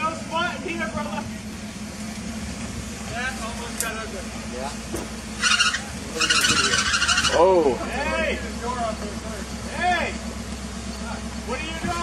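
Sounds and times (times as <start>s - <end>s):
car engine running low: 0.0s - 12.0s
harsh scraping screech: 5.3s - 7.8s.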